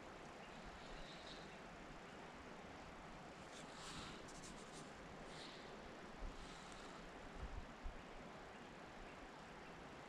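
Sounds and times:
soft outdoor hush: 0.0 - 10.0.

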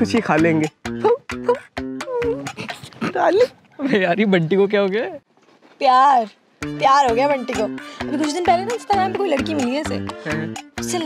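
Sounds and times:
background music with plucked notes: 0.0 - 2.8, 6.6 - 11.0.

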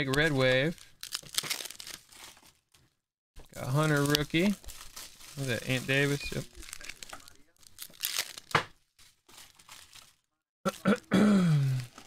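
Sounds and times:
card pack tearing open: 0.0 - 2.7, 3.6 - 8.7
foil wrapper crinkling: 0.0 - 12.0.

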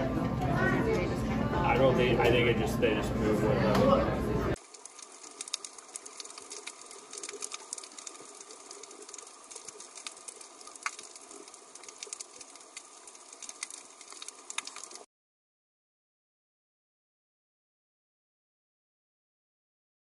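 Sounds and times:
sharp clicks and crackles: 4.6 - 15.1.

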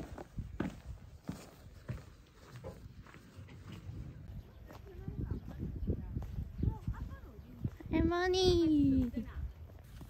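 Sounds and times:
footsteps thumping: 0.0 - 4.0.

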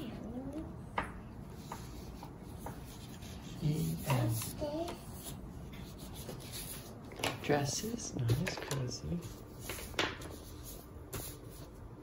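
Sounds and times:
crayon scratching on paper: 1.5 - 7.0.

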